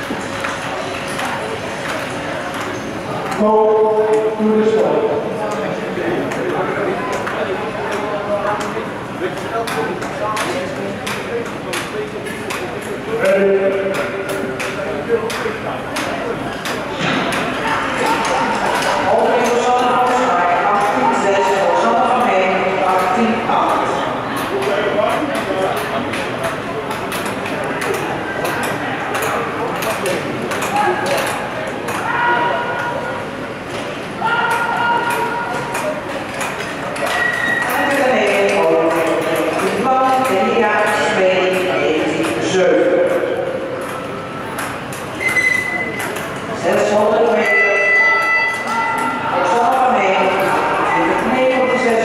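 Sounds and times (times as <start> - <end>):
voices in echoing hall: 0.0 - 52.0.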